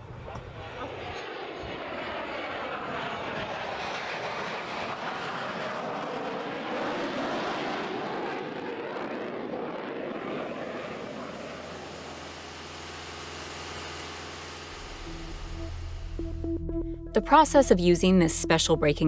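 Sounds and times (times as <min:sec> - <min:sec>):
jet engine noise: 0:00.0 - 0:16.5
aircraft passing whoosh: 0:00.0 - 0:17.2.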